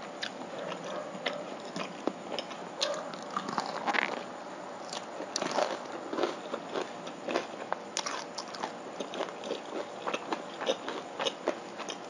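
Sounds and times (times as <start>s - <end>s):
person chewing crispy food: 0.2s - 4.2s, 4.8s - 12.0s.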